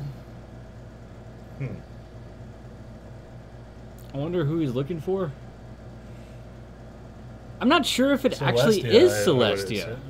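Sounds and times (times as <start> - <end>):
low hum: 0.0 - 7.6.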